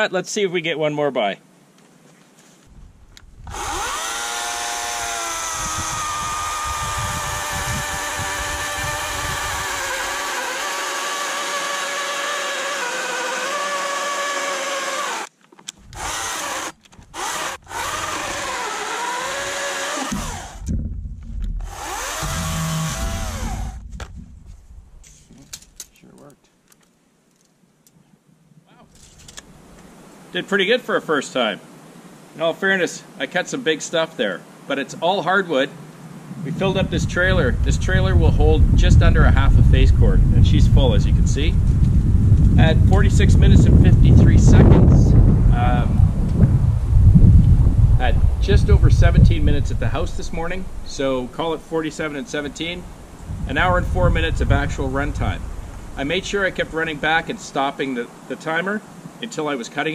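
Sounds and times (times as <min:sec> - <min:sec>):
electric chainsaw cutting log: 0:03.4 - 0:20.8, 0:21.6 - 0:23.9
low knocks: 0:20.1 - 0:25.0.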